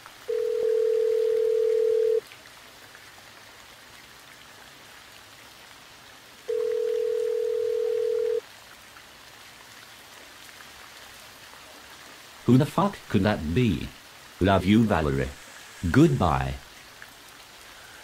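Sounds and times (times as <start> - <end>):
telephone ringing tone: 0.3 - 2.2, 6.5 - 8.4.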